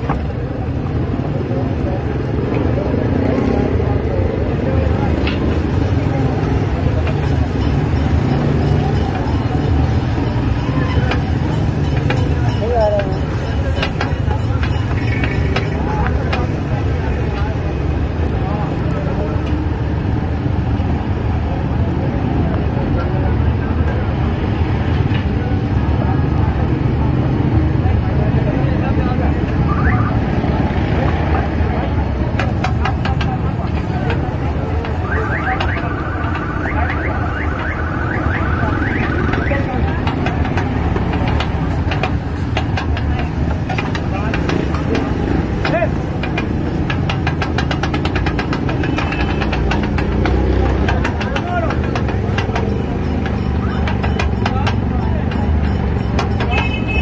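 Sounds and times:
traffic: 0.0s - 57.0s
voices: 0.0s - 57.0s.

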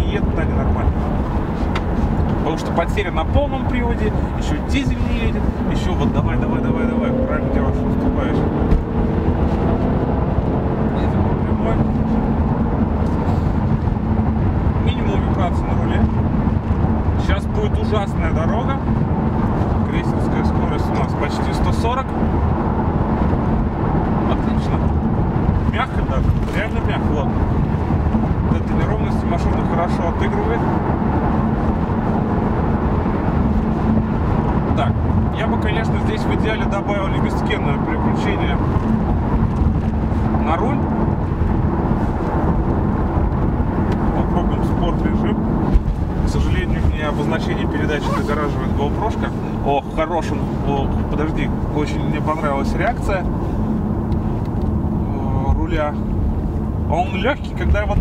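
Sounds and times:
car engine drone in cabin: 0.0s - 58.0s
tyre and road noise: 0.0s - 58.0s.

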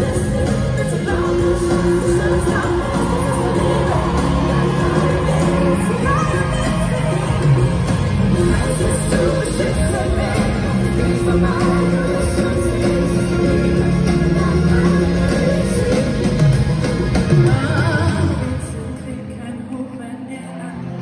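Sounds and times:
live pop concert music with singing: 0.0s - 21.0s.

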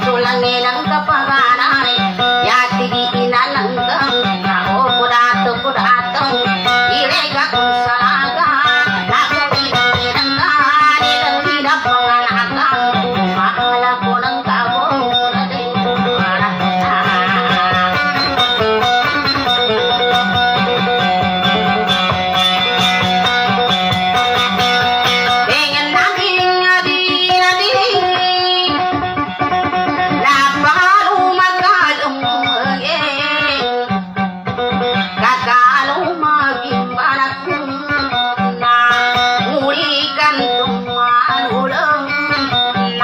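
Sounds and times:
amplified plucked string melody: 0.0s - 43.0s.

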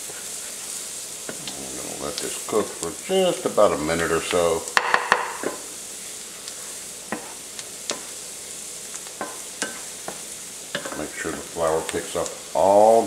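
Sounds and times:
vegetables sizzling in a pot: 0.0s - 13.0s.

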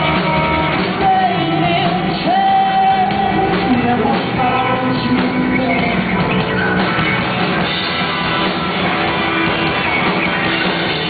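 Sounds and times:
electric guitars: 0.0s - 11.0s
rock band playing live: 0.0s - 11.0s.

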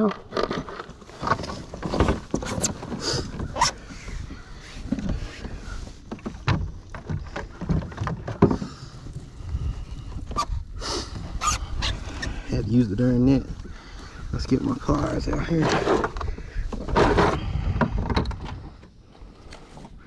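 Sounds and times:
knocks and thuds on kayak deck: 1.3s - 9.6s.

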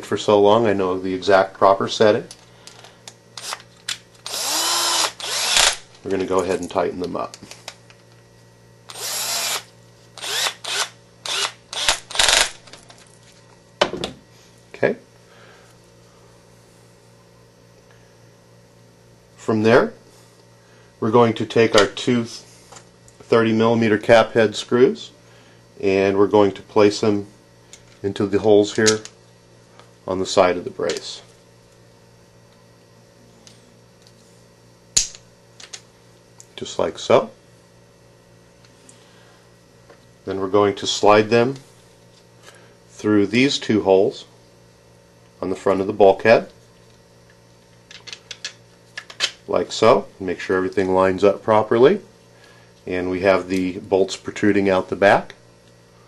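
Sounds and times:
low steady hum: 0.0s - 56.0s
cordless drill driving screws: 3.4s - 3.6s, 4.2s - 5.8s, 8.9s - 12.5s.

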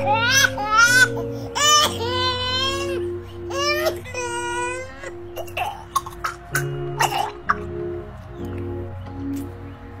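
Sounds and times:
infant crying: 0.0s - 7.6s
background music tones: 0.0s - 10.0s.

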